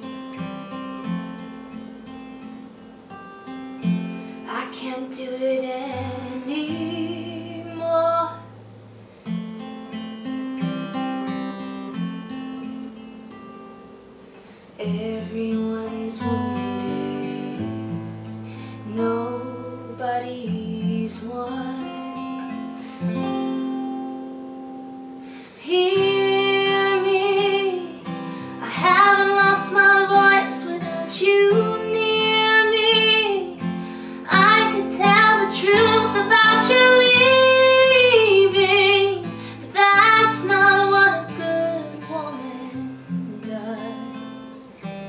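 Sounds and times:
strummed acoustic guitar: 0.0s - 45.0s
woman singing: 4.4s - 8.5s, 14.8s - 18.0s, 18.8s - 22.5s, 25.5s - 44.7s.

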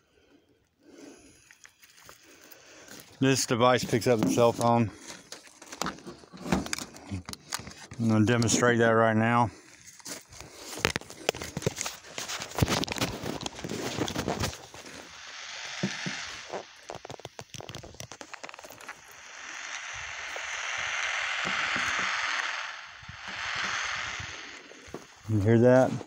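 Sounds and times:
microphone crackling and clicking: 3.1s - 8.7s, 9.9s - 15.1s, 15.7s - 19.2s, 20.2s - 26.0s
hiss: 14.6s - 25.9s.

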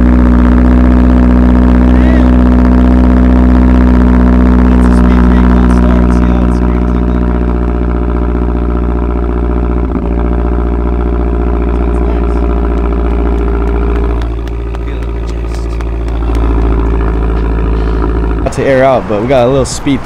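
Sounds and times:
car engine idling: 0.0s - 20.0s.

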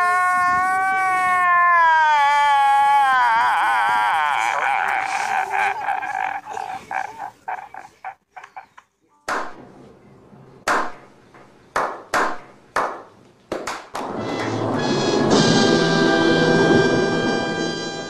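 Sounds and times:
man sobbing: 0.0s - 8.4s
echoing hand claps: 9.3s - 9.6s, 11.7s - 14.5s.

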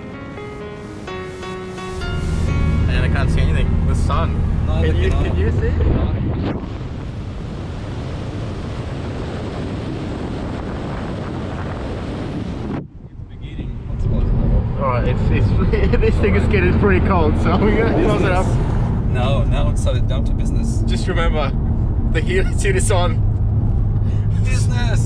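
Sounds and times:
wind and road noise rushing: 0.0s - 25.0s
car engine drone in cabin: 0.5s - 25.0s.

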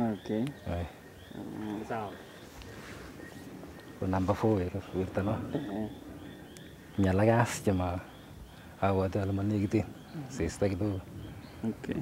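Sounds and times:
interview speech: 0.0s - 12.0s.

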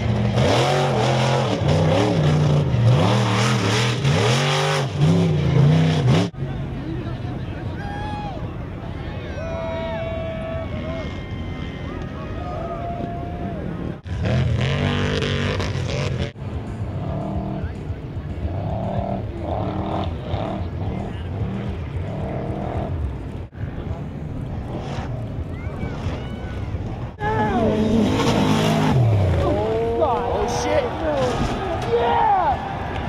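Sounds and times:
crowd noise: 0.0s - 33.0s
truck engines revving: 0.0s - 33.0s.

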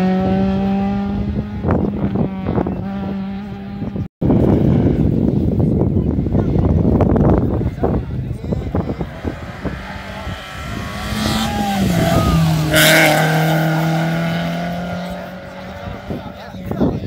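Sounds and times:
rally car passing by: 8.7s - 16.4s.

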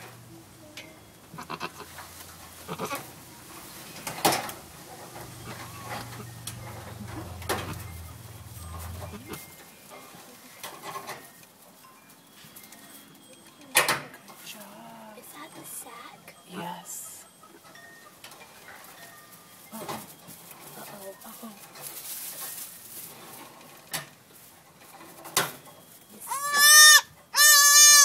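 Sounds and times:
steady low hum: 0.0s - 9.6s
goat calling: 1.3s - 3.2s, 5.2s - 9.4s, 26.3s - 28.0s.

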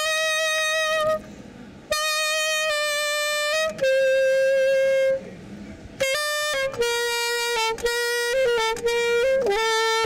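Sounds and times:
saxophone long note: 0.0s - 5.3s, 6.0s - 10.0s.

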